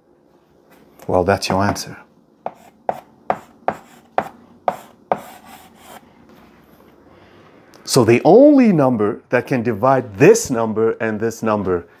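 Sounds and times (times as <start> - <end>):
chalk scraping on blackboard: 2.4 - 6.0
chalk tapping on blackboard: 2.4 - 6.0.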